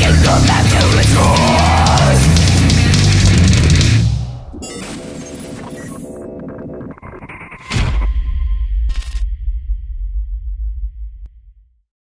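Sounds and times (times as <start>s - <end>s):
metal band playing: 0.0s - 4.6s.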